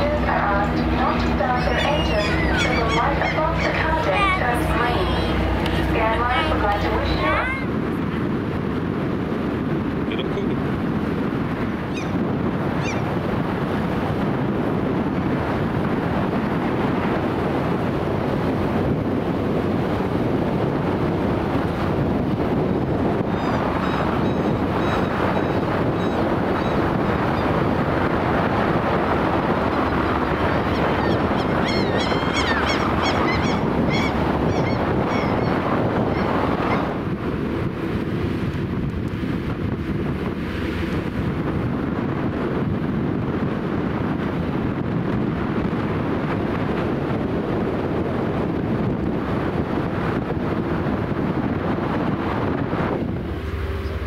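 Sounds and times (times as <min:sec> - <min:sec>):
wind on microphone: 0:00.0 - 0:54.0
high chirping bird calls: 0:00.8 - 0:04.0, 0:30.6 - 0:36.9.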